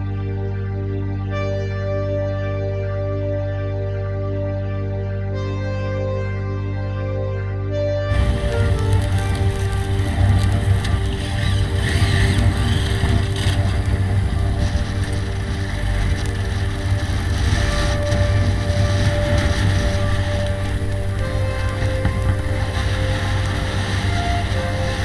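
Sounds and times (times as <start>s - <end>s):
background music: 0.0s - 25.0s
motorcycle engine running: 8.1s - 25.0s
wind buffeting microphone: 8.1s - 25.0s.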